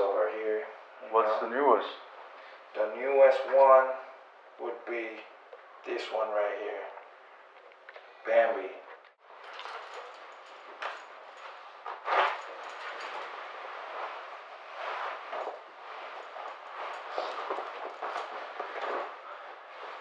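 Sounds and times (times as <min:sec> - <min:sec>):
clothing rustling and scraping: 0:09.0 - 0:20.0.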